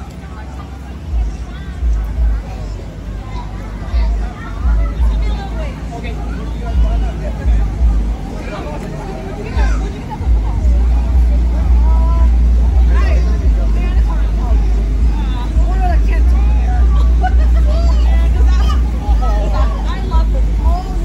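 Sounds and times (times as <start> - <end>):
children's voices and squeals: 0.0 - 21.0
heavy low rumble: 0.0 - 21.0.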